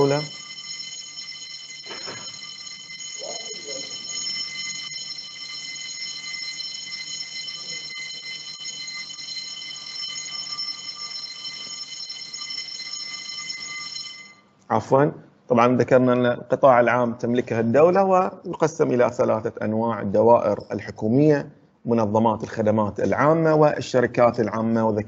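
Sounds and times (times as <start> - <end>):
high-pitched electronic tone: 1.8 - 2.4.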